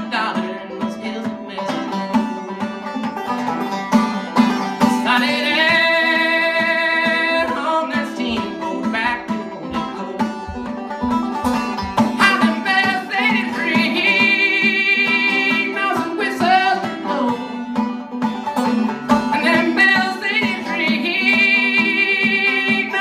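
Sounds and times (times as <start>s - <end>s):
man singing: 0.0s - 3.3s, 4.8s - 10.5s, 12.1s - 17.8s, 19.2s - 23.0s
banjo picking: 0.0s - 23.0s.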